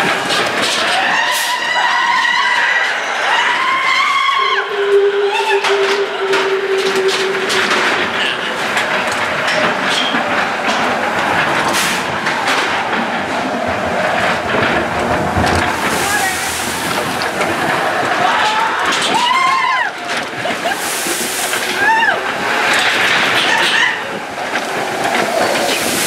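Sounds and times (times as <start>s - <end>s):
roller coaster rattling on track: 0.0s - 26.0s
wheels clacking: 0.0s - 26.0s
steady tone: 4.4s - 9.9s.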